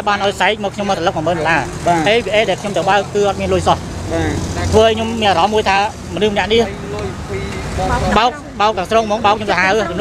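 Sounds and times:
person speaking: 0.0s - 10.0s
road traffic rumble: 0.0s - 10.0s
vehicle passing: 0.0s - 10.0s.

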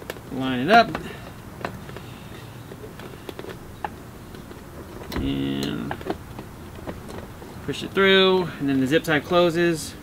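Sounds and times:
plastic parts clicking and tapping: 0.0s - 7.6s.

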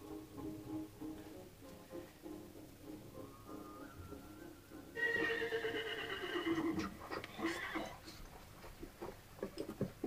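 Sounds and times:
horse whinnying: 5.0s - 8.0s.

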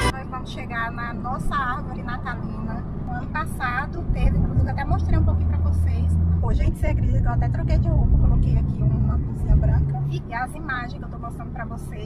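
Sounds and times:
car engine and tyres rumble: 0.0s - 12.0s.

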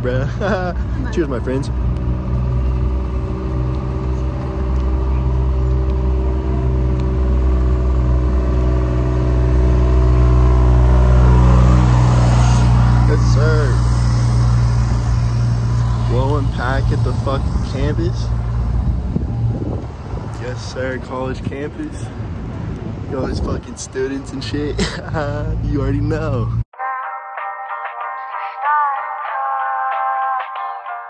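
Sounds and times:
vehicle engine running: 0.0s - 26.7s.

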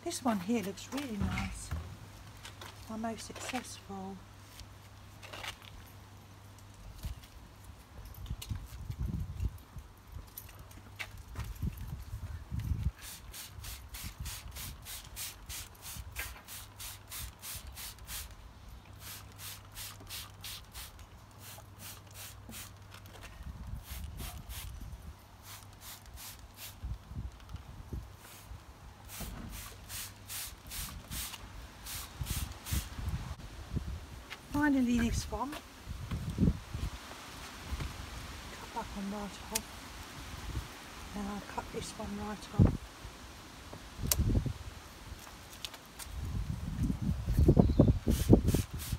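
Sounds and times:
spray bottle hissing sprays: 13.0s - 18.4s, 19.0s - 22.8s, 23.8s - 24.7s, 29.1s - 33.0s, 48.0s - 48.9s.

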